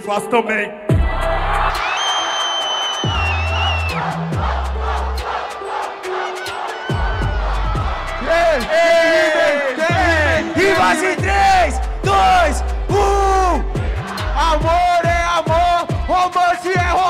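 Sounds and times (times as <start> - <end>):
hip-hop beat with deep bass: 0.8 - 17.0
crowd shouting and whooping: 1.0 - 17.0.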